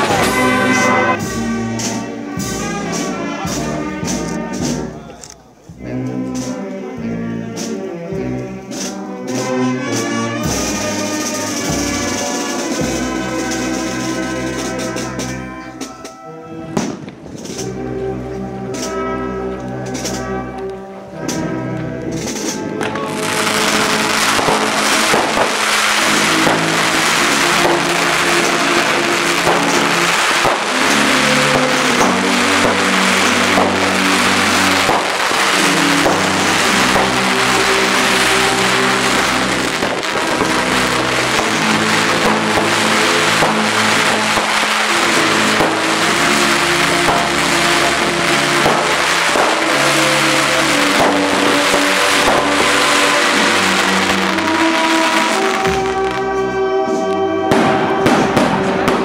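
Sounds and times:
firework rockets crackling: 0.0 - 4.4, 8.7 - 16.0, 16.7 - 17.9, 19.8 - 20.6, 21.2 - 59.0
music: 0.0 - 59.0.

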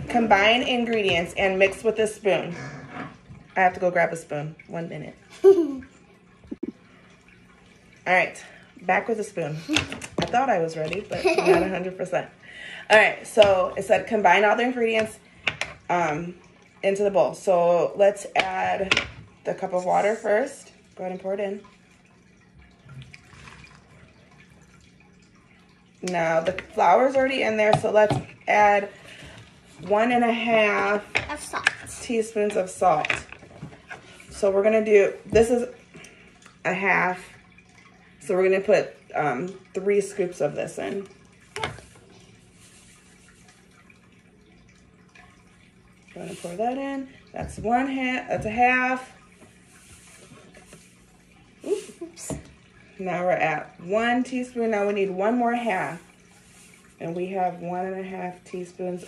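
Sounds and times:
water pouring into bowl: 35.0 - 47.4.

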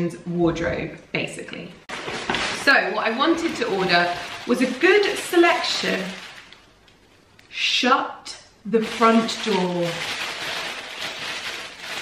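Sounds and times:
plastic wrapping crinkling: 1.9 - 7.4, 8.8 - 12.0.

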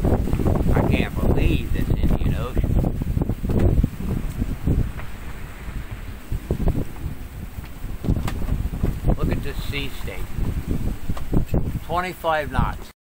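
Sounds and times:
strong wind buffeting microphone: 0.0 - 12.9.

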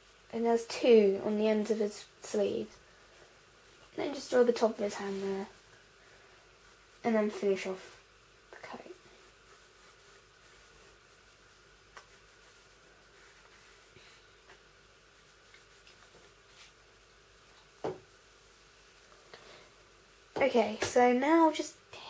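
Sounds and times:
pencil scratching on paper: 8.6 - 13.9.

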